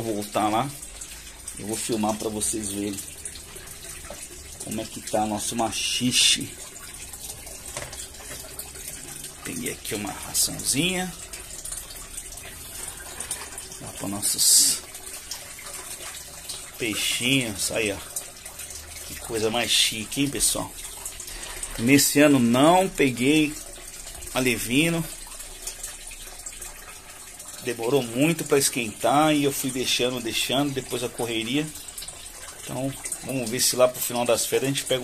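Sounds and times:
water flowing from pipe into tank: 0.0s - 35.0s.

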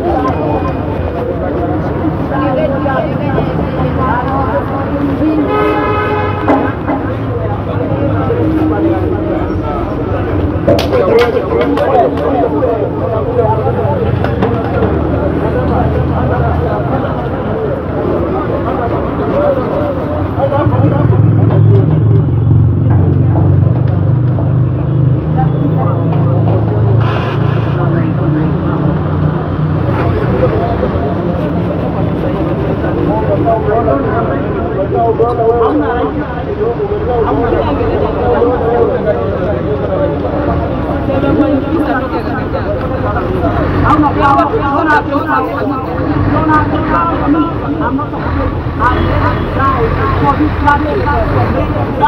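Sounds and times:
people talking: 0.0s - 52.0s.

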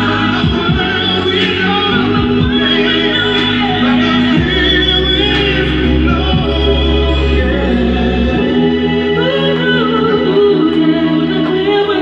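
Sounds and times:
instrumental backing: 0.0s - 12.0s
voices singing: 0.0s - 12.0s.

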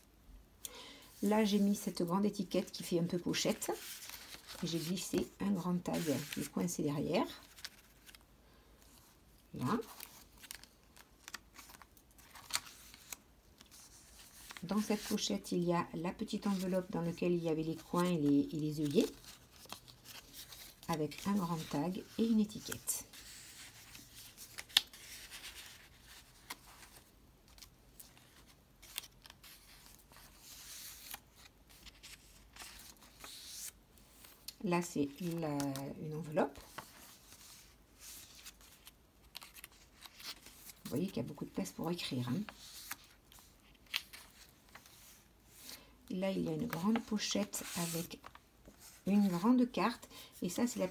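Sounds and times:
paper rustling: 2.6s - 8.2s, 8.9s - 15.5s, 16.2s - 49.8s.

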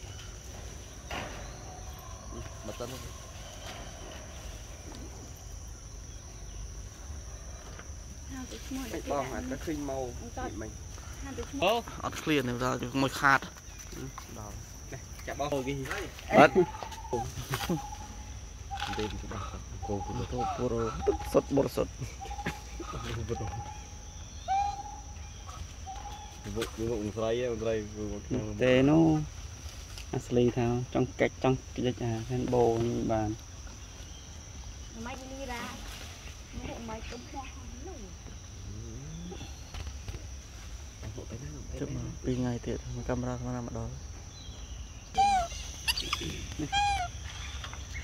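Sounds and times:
insects droning: 0.0s - 48.0s
baby monkey coo calls: 16.3s - 26.4s, 45.0s - 48.0s
baby monkey squeaks: 45.1s - 47.6s.

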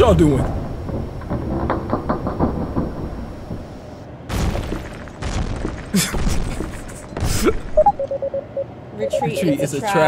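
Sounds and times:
rapid irregular clanks: 0.0s - 4.0s
deep mechanical rumbling: 0.0s - 8.3s.

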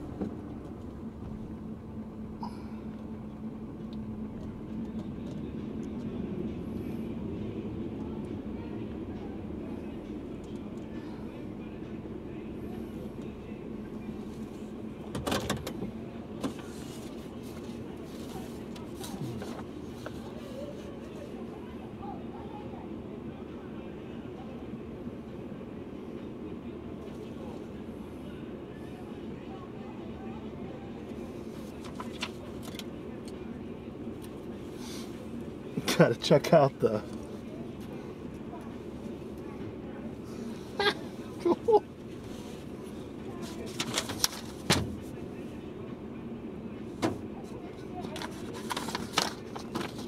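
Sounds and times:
car driving hum from inside: 0.0s - 22.8s.

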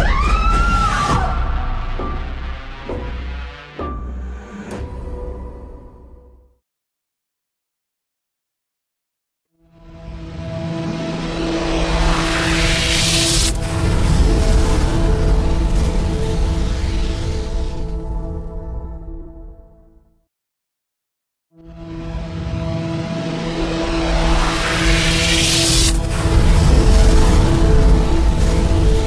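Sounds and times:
rushing noise: 10.6s - 18.0s, 22.9s - 29.0s.

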